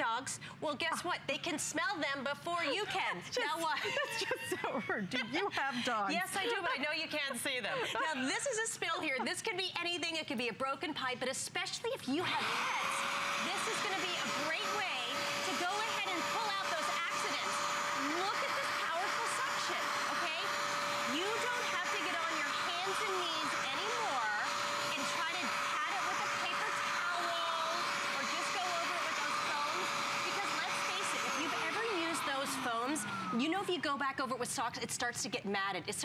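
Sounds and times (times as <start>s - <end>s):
carpet cleaner motor whine: 12.2s - 33.5s.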